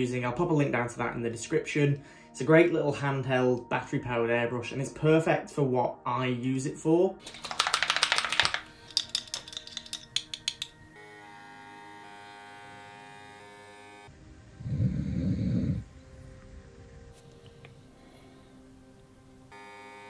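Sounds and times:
paint bottles and airbrush clatter: 7.2 - 10.7
dog snoring: 14.5 - 16.0.

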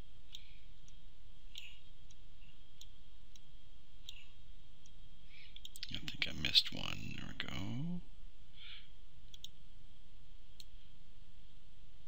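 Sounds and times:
low room hum: 0.0 - 12.0
computer clicks: 9.3 - 9.6.

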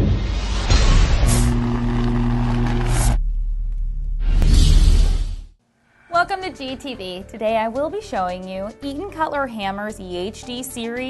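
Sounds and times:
whoosh: 0.0 - 5.6.

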